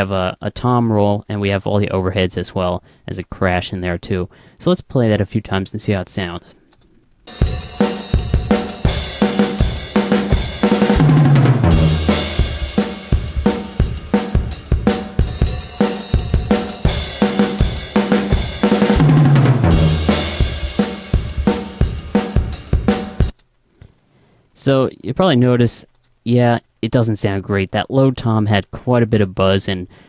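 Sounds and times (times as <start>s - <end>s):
drum kit playing: 7.3s - 23.4s.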